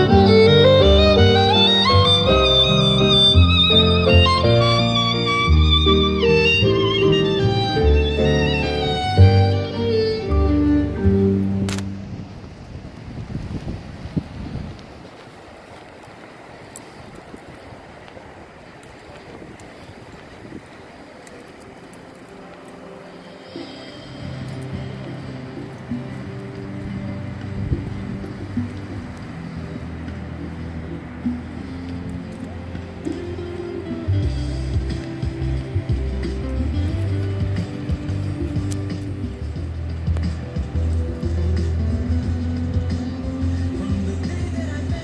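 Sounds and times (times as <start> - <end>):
background music with bass notes: 0.0 - 12.2, 23.5 - 45.0.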